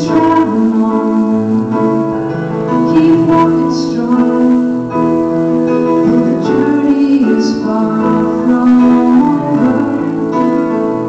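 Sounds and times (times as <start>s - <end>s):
electronic keyboard piano chords: 0.0s - 11.0s.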